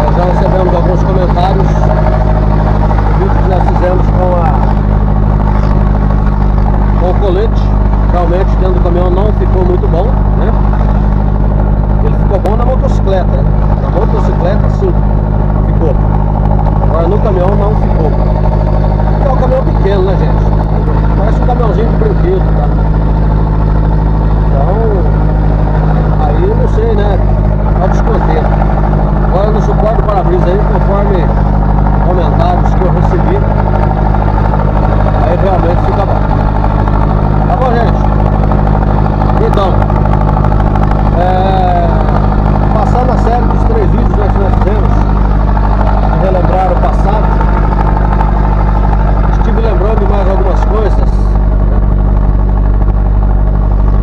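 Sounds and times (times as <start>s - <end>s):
vehicle engine drone from cab: 0.0s - 54.0s.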